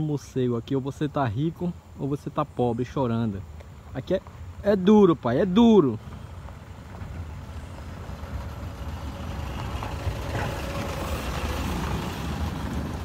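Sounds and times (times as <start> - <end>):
pickup truck driving past: 5.8 - 13.0.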